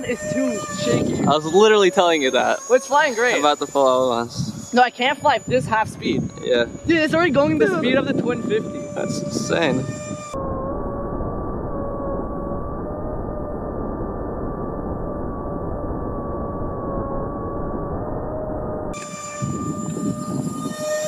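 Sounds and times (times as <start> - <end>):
electric fan whine: 0.0 - 21.0.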